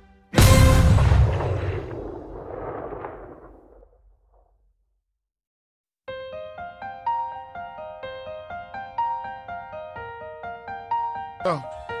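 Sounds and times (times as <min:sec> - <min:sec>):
loud noisy crash: 0:00.4 - 0:04.4.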